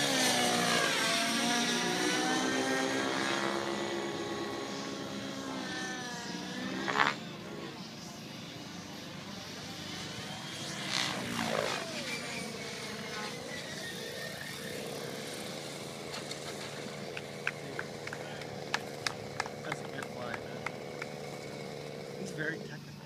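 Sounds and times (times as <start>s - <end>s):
model helicopter rotor and motor: 0.0s - 23.0s.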